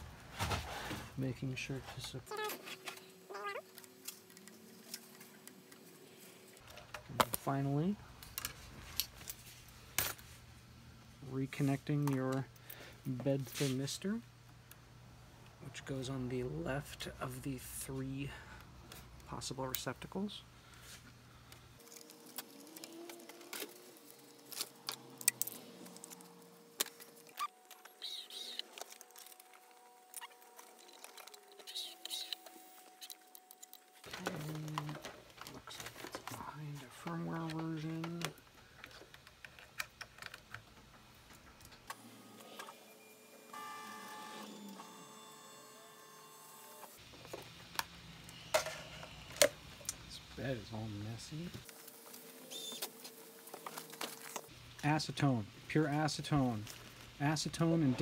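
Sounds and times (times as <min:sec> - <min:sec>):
hands handling wiring and connectors: 0:21.1 - 0:36.4.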